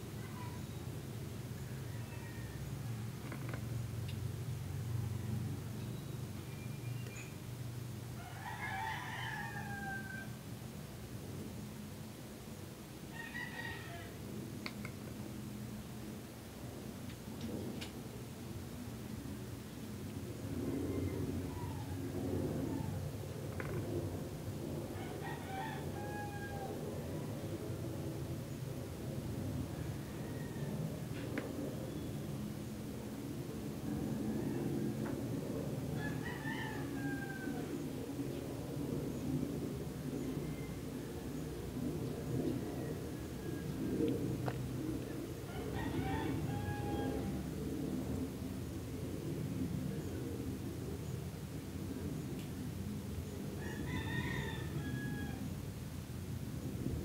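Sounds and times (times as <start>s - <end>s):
steady low hum: 0.0s - 8.6s, 14.0s - 53.9s, 54.6s - 57.0s
rooster crowing: 1.6s - 3.5s, 8.1s - 10.4s, 13.1s - 14.2s, 20.9s - 23.8s, 24.9s - 27.3s, 29.7s - 31.4s, 33.9s - 35.2s, 35.9s - 37.9s, 40.4s - 41.2s, 42.7s - 43.9s, 45.4s - 47.6s, 53.6s - 55.6s.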